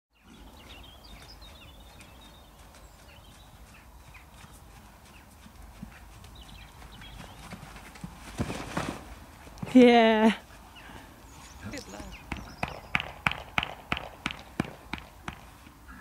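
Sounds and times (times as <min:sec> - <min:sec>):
horse hoofbeats on soft ground: 0:00.2 - 0:16.0.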